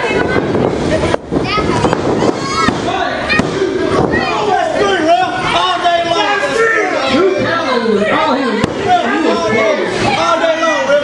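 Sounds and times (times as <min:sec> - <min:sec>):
crowd shouting: 0:01.7 - 0:11.0.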